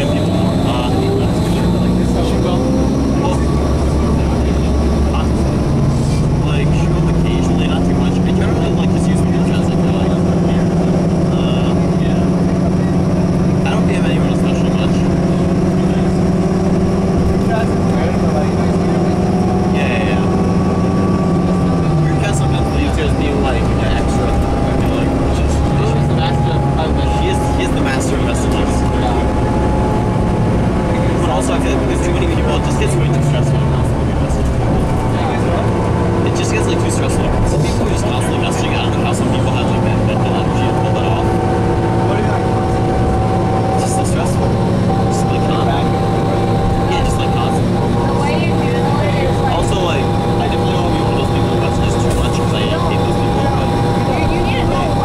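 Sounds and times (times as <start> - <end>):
bus diesel engine: 0.0 - 55.0
high-pitched whine: 0.0 - 55.0
road noise: 0.0 - 55.0.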